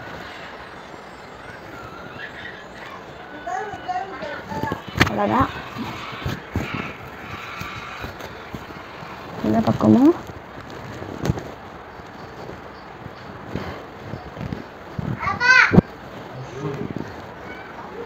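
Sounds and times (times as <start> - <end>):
hair being combed: 2.9 - 11.6
microphone handling rustle: 4.4 - 17.8.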